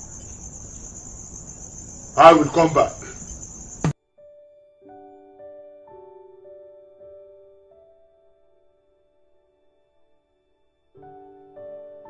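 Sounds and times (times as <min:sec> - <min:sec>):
crickets trilling: 0:00.0 - 0:04.0.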